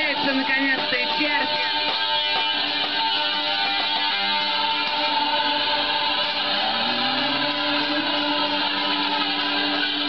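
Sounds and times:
distorted electric guitar droning: 0:00.0 - 0:10.0.

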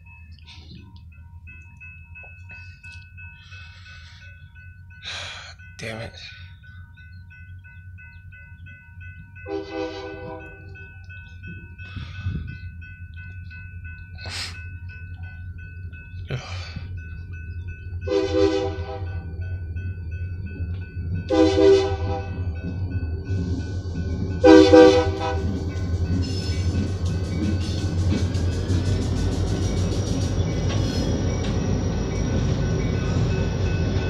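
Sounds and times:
crossing bells ringing: 0:00.0 - 0:34.0
locomotive air horn blasts: 0:09.5 - 0:10.7, 0:18.1 - 0:19.2, 0:21.3 - 0:22.4, 0:24.4 - 0:25.6.

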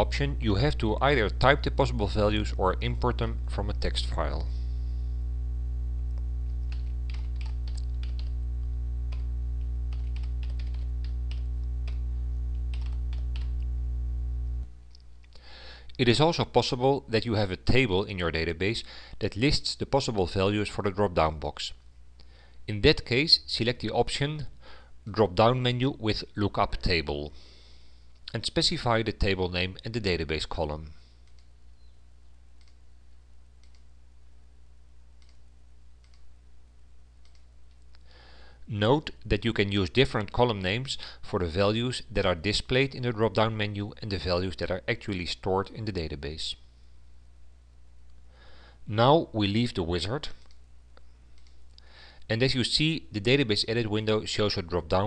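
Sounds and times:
steady low hum: 0:00.0 - 0:25.4
low electrical hum: 0:00.0 - 0:55.0
computer mouse clicking: 0:06.7 - 0:08.3, 0:31.2 - 0:31.5, 0:32.6 - 0:32.8, 0:33.6 - 0:33.9, 0:35.2 - 0:35.4, 0:36.0 - 0:36.3, 0:37.2 - 0:37.8, 0:51.4 - 0:51.6.

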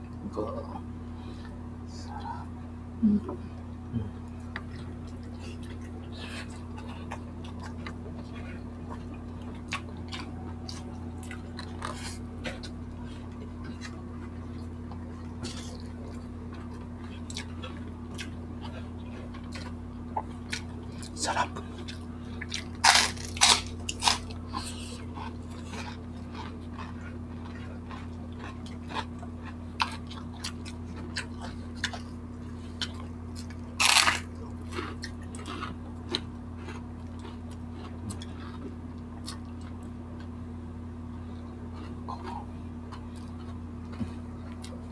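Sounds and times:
steady low hum: 0:00.0 - 0:44.9
crunching crispy fried food: 0:04.5 - 0:40.4
chewing and wet mouth clicks: 0:34.6 - 0:40.0.

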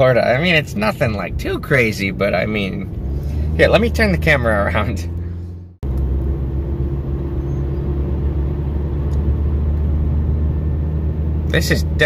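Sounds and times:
car driving heard from inside: 0:00.0 - 0:12.0.

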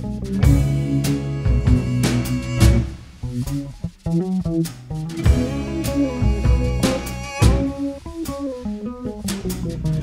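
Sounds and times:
bass: 0:00.0 - 0:10.0
swing blues band playing: 0:00.0 - 0:10.0
guitar single notes: 0:05.2 - 0:10.0.

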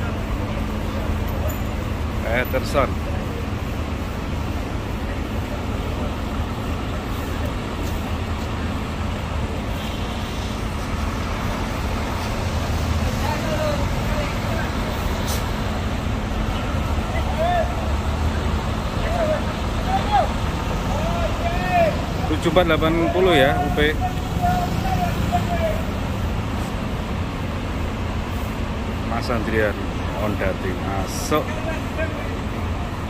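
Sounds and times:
diesel bus engine rumble: 0:00.0 - 0:33.0.

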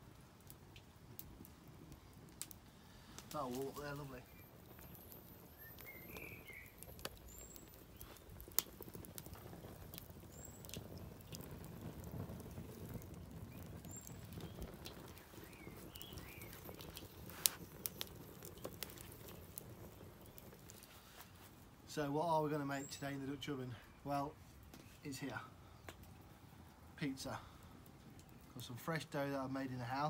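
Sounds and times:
fire crackling and popping: 0:00.0 - 0:30.0
small birds chirping: 0:01.9 - 0:30.0.

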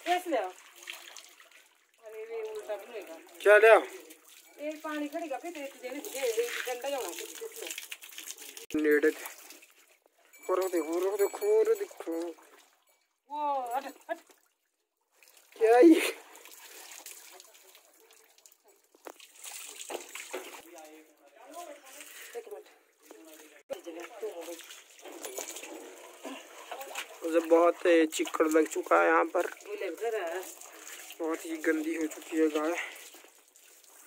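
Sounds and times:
water splashing and trickling: 0:00.0 - 0:34.0
plastic brush scrubbing wet hide: 0:23.3 - 0:34.0.

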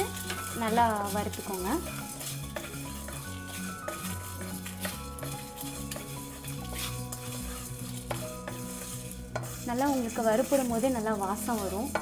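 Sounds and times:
spatula scraping a pan: 0:00.0 - 0:12.0
spices sizzling in hot oil: 0:00.0 - 0:12.0.

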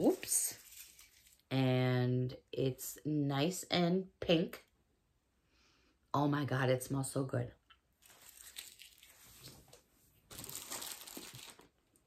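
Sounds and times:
foil wrapper crinkling: 0:00.0 - 0:01.5, 0:08.0 - 0:09.6, 0:10.3 - 0:12.0.

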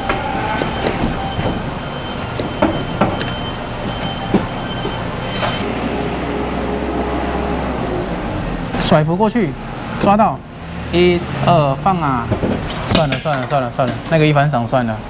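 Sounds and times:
claw machine mechanical din: 0:00.0 - 0:07.9.

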